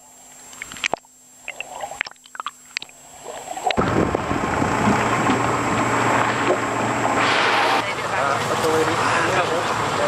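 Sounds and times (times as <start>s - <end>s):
water washing: 0.5s - 10.0s
small boat motor humming: 2.6s - 10.0s
wind on microphone: 3.8s - 7.8s.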